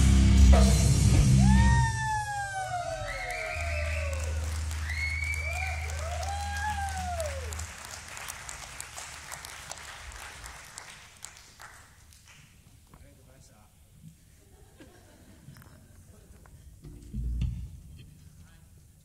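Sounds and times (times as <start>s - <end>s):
audience applause and cheering: 1.1s - 12.6s
rising and falling whoops: 1.3s - 7.7s.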